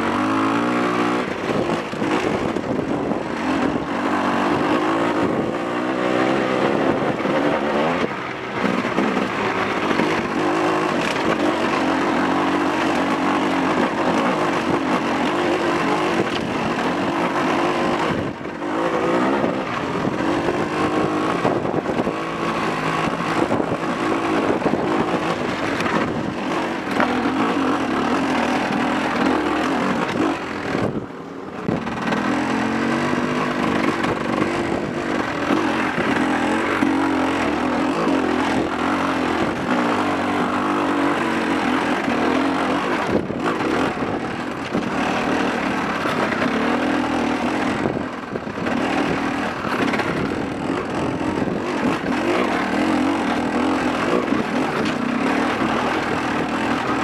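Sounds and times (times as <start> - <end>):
dirt bike engine revving: 0.0 - 57.0
wind noise: 0.0 - 57.0.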